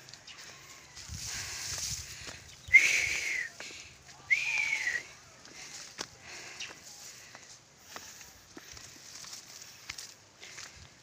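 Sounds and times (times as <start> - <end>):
loud whistles: 4.3 - 5.1.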